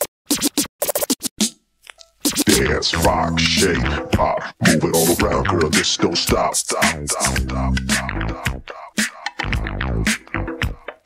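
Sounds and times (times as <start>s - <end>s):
turntable scratching: 0.0s - 11.0s.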